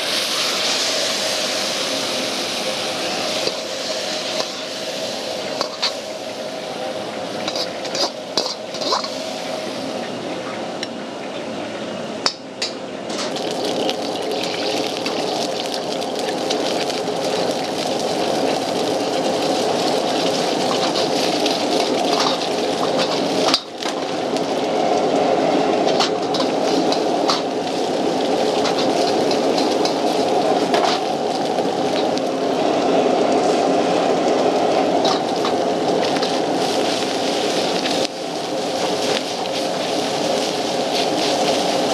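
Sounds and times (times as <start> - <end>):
gas wok burner rushing: 0.0 - 10.8, 13.1 - 41.9
metal ladle scraping wok: 0.1 - 6.3, 7.4 - 9.5.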